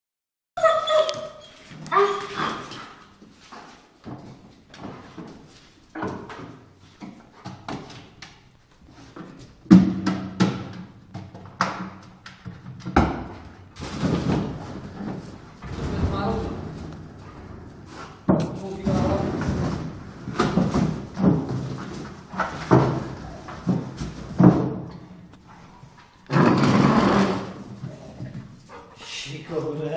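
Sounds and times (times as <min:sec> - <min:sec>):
knocks and thuds on wood: 0:09.6 - 0:16.1, 0:18.2 - 0:25.0.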